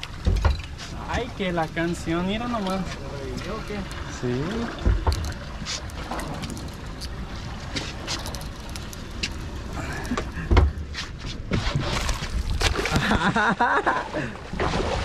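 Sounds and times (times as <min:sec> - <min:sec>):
water noise: 0:00.0 - 0:15.0
wind: 0:00.0 - 0:15.0.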